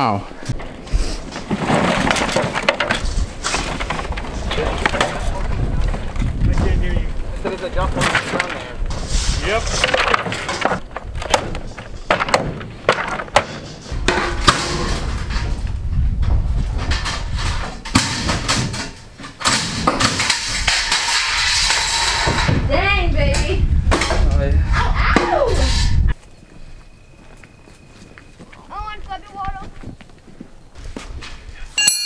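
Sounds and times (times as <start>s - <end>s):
debris crashing into dumpster: 1.3s - 7.1s, 7.7s - 15.8s.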